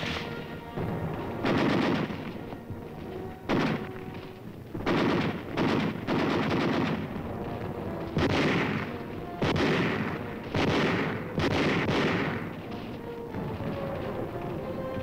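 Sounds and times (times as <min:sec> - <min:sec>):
gunfire with echo: 0:00.0 - 0:02.6, 0:03.4 - 0:12.8.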